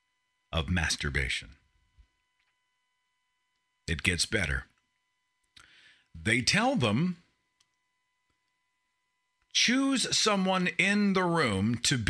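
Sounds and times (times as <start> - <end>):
man speaking: 0.5 - 1.6, 3.9 - 4.8, 6.2 - 7.3, 9.5 - 12.0.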